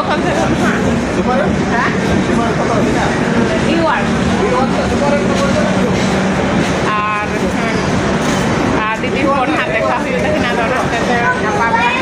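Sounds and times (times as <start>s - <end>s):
people talking: 0.0s - 12.0s
train low hum: 0.0s - 12.0s.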